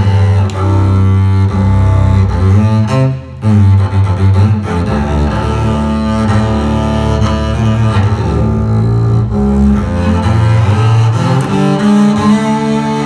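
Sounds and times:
bowed double bass: 0:00.0 - 0:13.0.

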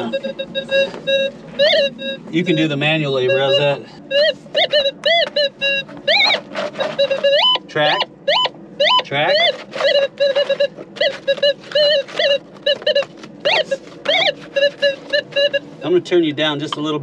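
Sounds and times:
metal detector beeps and chirps: 0:00.0 - 0:16.0.

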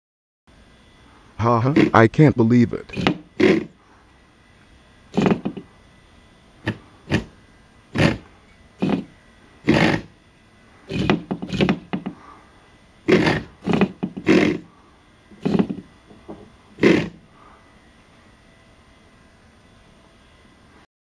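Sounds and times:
small motors buzzing: 0:00.8 - 0:18.0.

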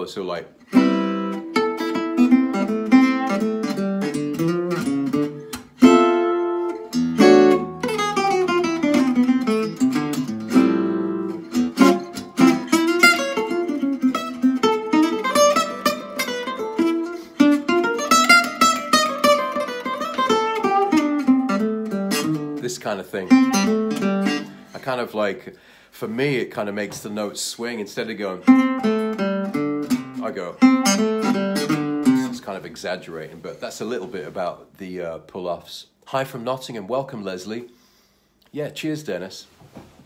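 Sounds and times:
acoustic guitar solo lines: 0:00.0 - 0:37.6.

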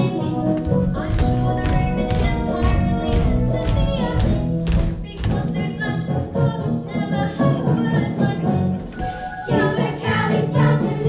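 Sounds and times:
backing music with steady beat: 0:00.0 - 0:11.0
children singing: 0:08.3 - 0:11.0.

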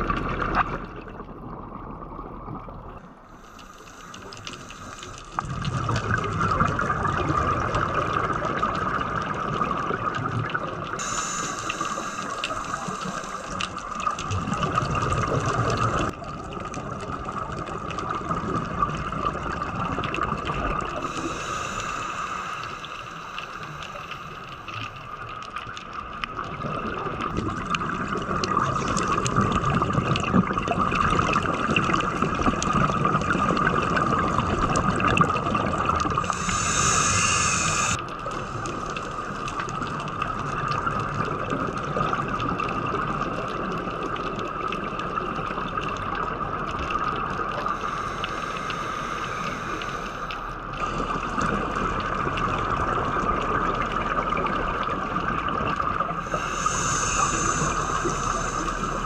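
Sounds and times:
muffled rushing water: 0:00.0 - 0:59.0
regulator bubbles gurgling: 0:00.0 - 0:59.0.

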